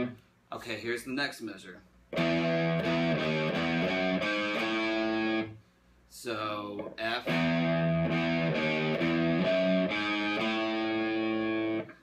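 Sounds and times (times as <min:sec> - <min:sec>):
distorted electric guitar notes: 0:02.2 - 0:05.6, 0:06.8 - 0:12.0.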